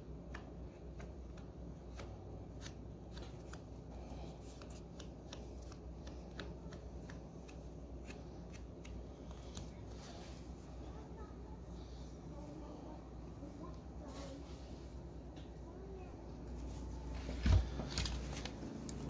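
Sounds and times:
low steady hum: 0.0 - 19.0.

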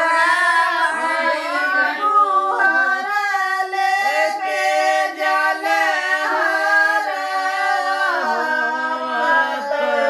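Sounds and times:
women singing folk song: 0.0 - 10.0.

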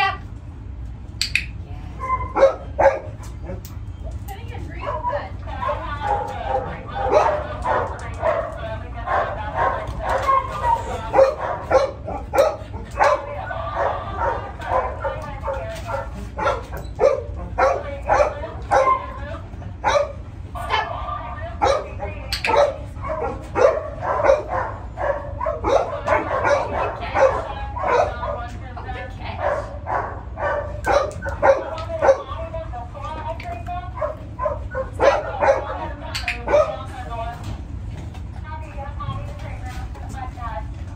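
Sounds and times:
dog whining and yipping: 2.0 - 2.7.

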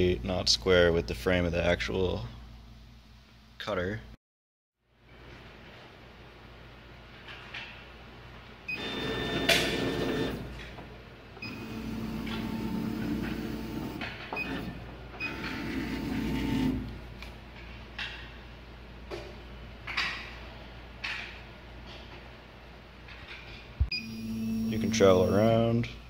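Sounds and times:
stepper motors whining: 11.4 - 16.9, 23.9 - 25.5.

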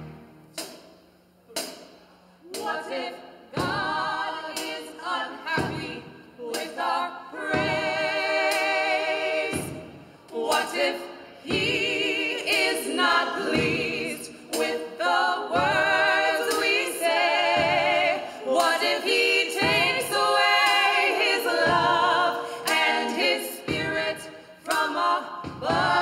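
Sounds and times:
gospel choir singing a cappella: 1.5 - 26.0.

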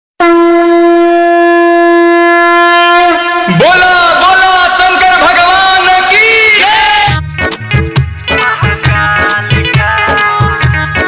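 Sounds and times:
conch shell blown: 0.2 - 3.6, 7.1 - 11.0.

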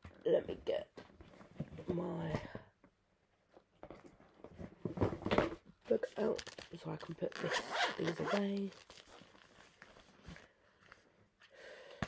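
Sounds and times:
handling of a paperback booklet: 6.0 - 11.5
soft breath: 10.3 - 12.0.

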